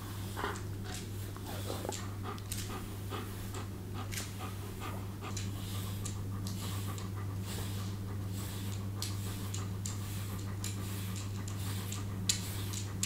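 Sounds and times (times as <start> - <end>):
dog panting: 0.0 - 13.0
steady low hum: 0.0 - 13.0.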